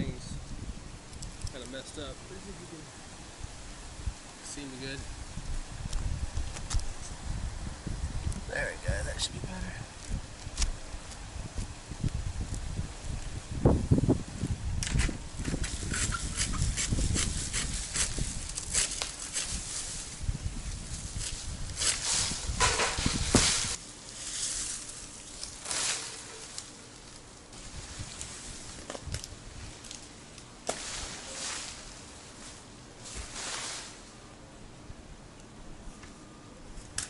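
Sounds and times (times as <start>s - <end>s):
palm fronds snapping and rustling: 5.9s - 7.2s, 10.0s - 13.3s, 14.7s - 34.2s
frond falling with rushing rustle: 14.8s - 34.2s.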